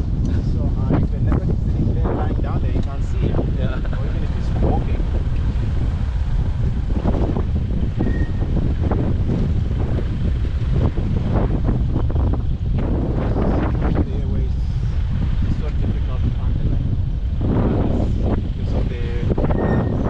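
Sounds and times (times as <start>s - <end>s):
vehicle driving on dirt track: 0.0s - 20.0s
wind buffeting microphone: 0.0s - 20.0s.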